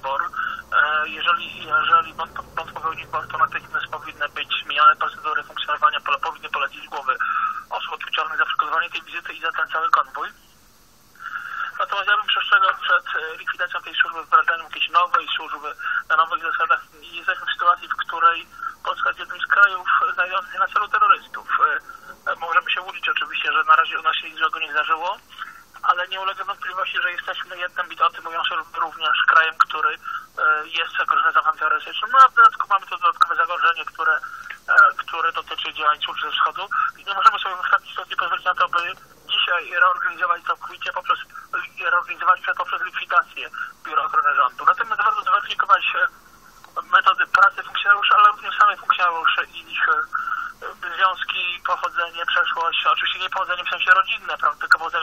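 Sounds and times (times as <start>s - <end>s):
person speaking over telephone: 0.0s - 10.6s, 11.2s - 55.0s.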